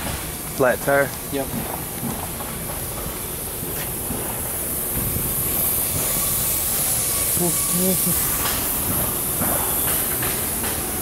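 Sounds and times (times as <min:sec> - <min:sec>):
high hiss: 0:00.0 - 0:11.0.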